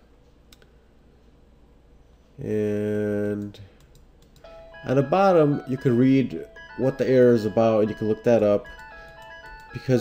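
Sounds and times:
faint room hiss: 0.0 - 10.0.

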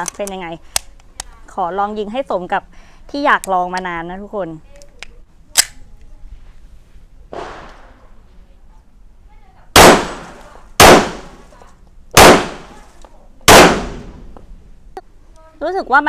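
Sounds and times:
faint bang: 7.3 - 8.2
pistol shots with echo: 9.8 - 11.4, 12.2 - 12.8, 13.5 - 14.2.

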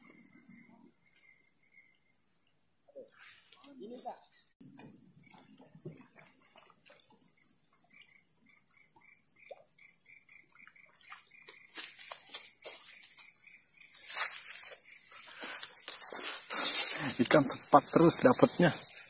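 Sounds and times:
high-pitched insect whine: 0.0 - 19.0
rustling and water splashing: 11.0 - 19.0.

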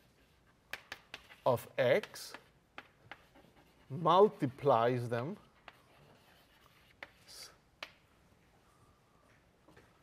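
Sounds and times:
chalk tapping on blackboard: 0.2 - 3.9, 5.6 - 8.0.

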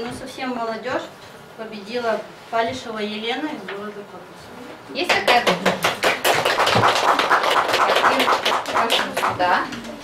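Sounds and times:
people applauding: 5.1 - 9.6.

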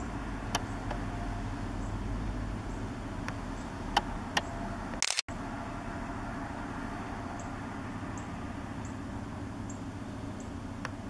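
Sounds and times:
distant city traffic rumble: 0.0 - 11.0.

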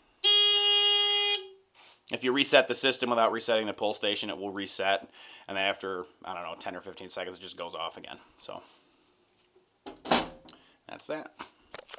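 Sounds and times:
metal door latching shut: 9.9 - 10.4.

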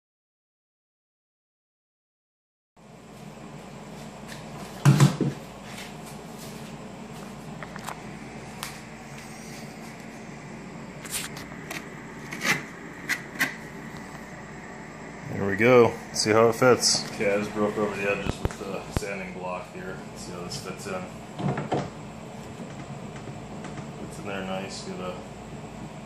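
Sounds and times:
low workshop hum: 2.8 - 26.0.

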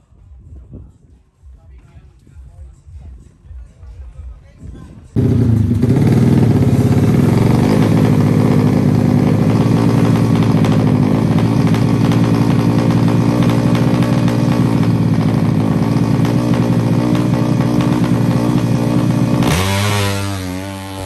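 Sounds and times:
motorcycle engine idling: 5.2 - 21.0.

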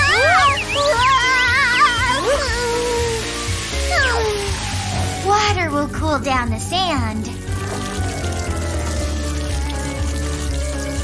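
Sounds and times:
background music: 0.0 - 11.0
fire hose spraying water: 0.0 - 11.0.

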